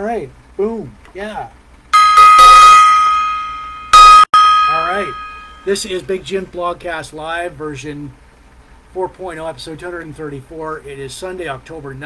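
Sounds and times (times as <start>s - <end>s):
brass gong ringing: 2.0s - 5.7s.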